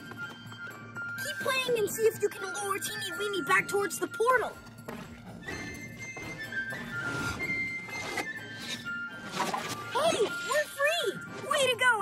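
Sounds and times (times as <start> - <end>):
cartoon background music: 0.0 - 12.0
flute slow melody: 5.1 - 10.6.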